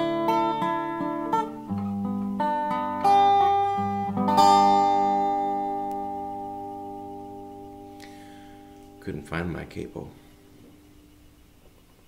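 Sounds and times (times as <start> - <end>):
resonator guitar notes and chord: 0.0 - 11.3.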